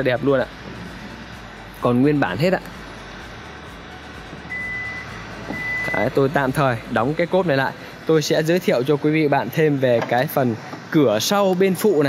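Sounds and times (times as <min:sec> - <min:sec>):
high warning beeps: 0:04.5 - 0:06.5.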